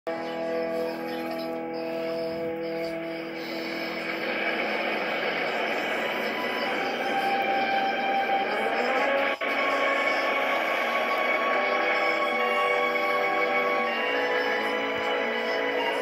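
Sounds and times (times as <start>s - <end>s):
film music: 0.1s - 16.0s.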